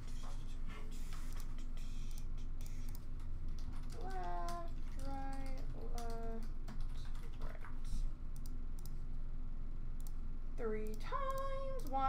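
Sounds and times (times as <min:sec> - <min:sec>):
computer keyboard clicks: 0:01.3 - 0:07.8.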